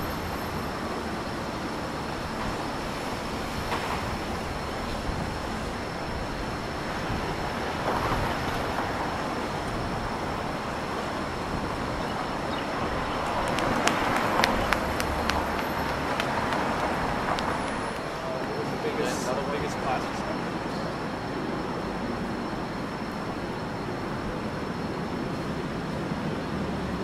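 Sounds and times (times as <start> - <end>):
car and tyre noise: 0.0 - 27.0.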